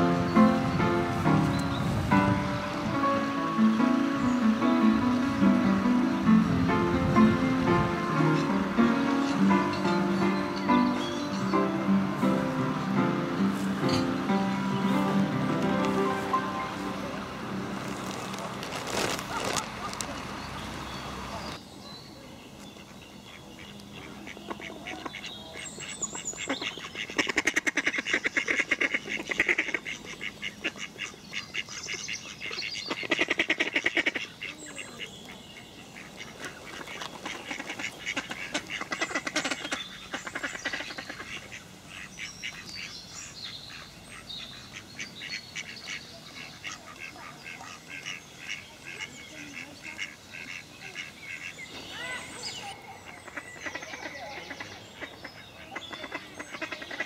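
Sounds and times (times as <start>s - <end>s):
ducks quacking: 0.0s - 20.3s, 22.8s - 57.0s
small birds chirping: 0.0s - 57.0s.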